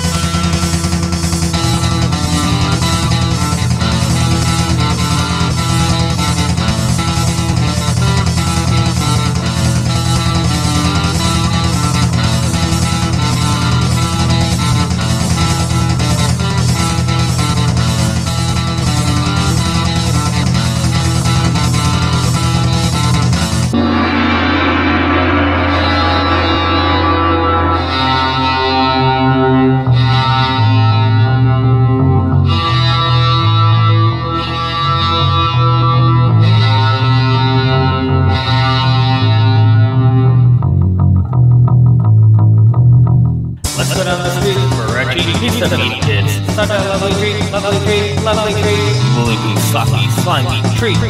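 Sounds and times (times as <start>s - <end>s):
drums: 0.0s - 31.0s, 43.2s - 51.0s
bass guitar: 0.0s - 51.0s
electric guitar riff: 0.0s - 51.0s.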